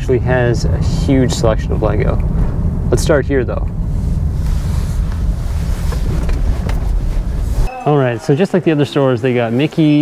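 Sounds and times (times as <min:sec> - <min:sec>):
car engine and tyres rumbling: 0:00.0 - 0:07.7.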